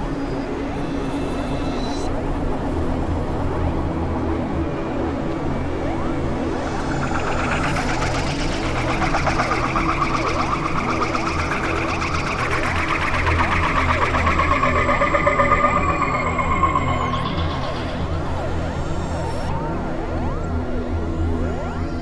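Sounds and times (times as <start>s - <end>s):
low synthesizer drone: 0.0s - 22.0s
gliding synthesizer tones: 4.8s - 22.0s.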